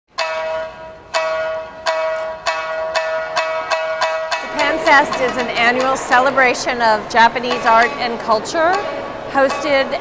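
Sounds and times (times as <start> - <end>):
plucked string instrument high note: 0.2 - 10.0.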